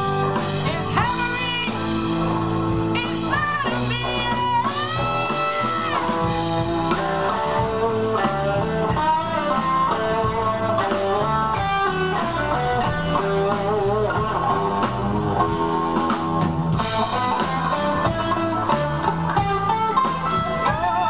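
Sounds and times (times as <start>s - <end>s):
electric guitar bent notes: 0.0s - 21.0s
live blues band playing: 0.0s - 21.0s.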